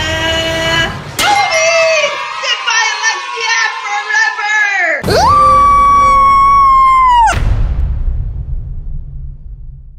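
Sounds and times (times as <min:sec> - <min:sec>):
woman screaming: 0:05.0 - 0:07.4
burst and low rumble: 0:07.0 - 0:09.9.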